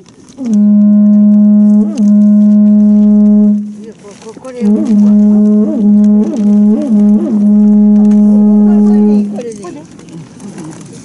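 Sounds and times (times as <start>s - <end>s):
conch-shell trumpet blast: 0.4s - 4.0s, 4.6s - 9.6s.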